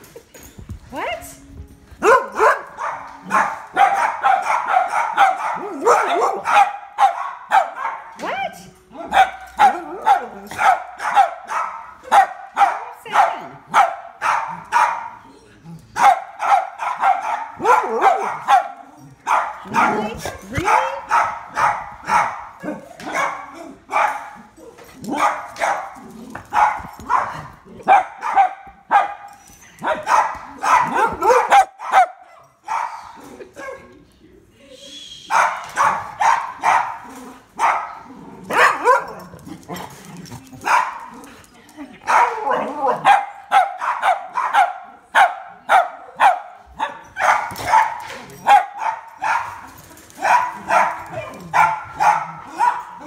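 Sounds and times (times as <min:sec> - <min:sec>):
dog barking: 0:02.0 - 0:08.2, 0:09.0 - 0:15.2, 0:16.0 - 0:24.4, 0:25.1 - 0:33.0, 0:35.3 - 0:39.2, 0:40.6 - 0:41.2, 0:42.0 - 0:49.6, 0:50.2 - 0:53.0.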